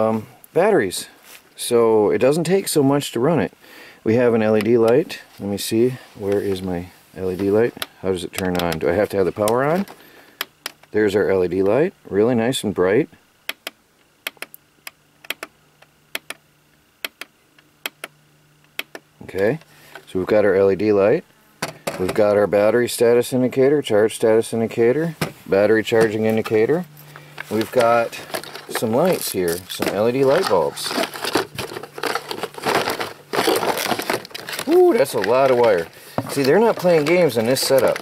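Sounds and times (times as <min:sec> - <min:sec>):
plastic case handling: 0:25.2 - 0:38.0
packaging rustling and crinkling: 0:25.4 - 0:38.0.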